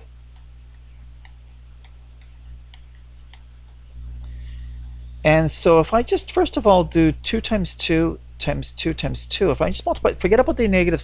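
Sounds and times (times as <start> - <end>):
stylus tapping tablet: 0.0 - 5.0
low electrical hum: 0.0 - 11.0.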